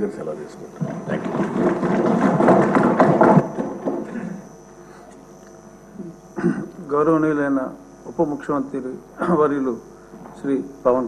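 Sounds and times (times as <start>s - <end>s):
people thumping desks: 0.8s - 4.5s.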